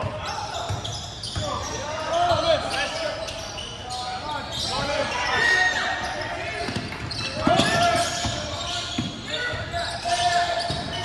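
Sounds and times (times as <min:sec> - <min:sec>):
players' voices: 0:00.0 - 0:11.0
sneakers squeaking: 0:00.0 - 0:11.0.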